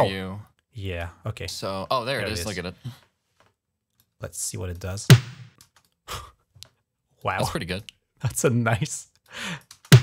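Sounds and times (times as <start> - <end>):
snare drum hit: 5.1 - 5.5.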